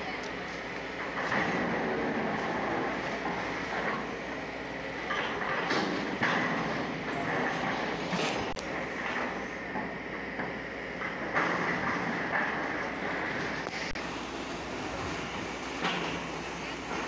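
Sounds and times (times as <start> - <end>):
excavator rumbling: 0.0 - 17.0.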